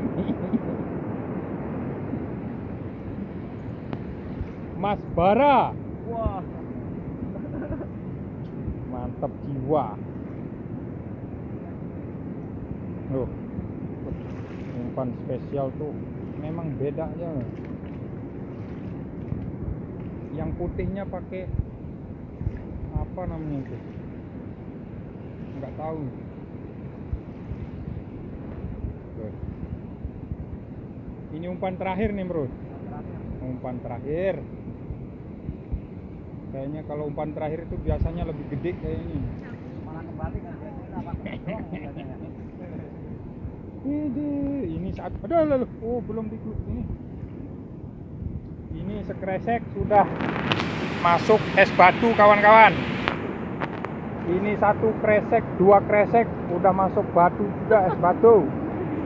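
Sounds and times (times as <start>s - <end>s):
rushing outdoor background noise: 0.0s - 59.0s
wind buffeting microphone: 0.0s - 59.0s.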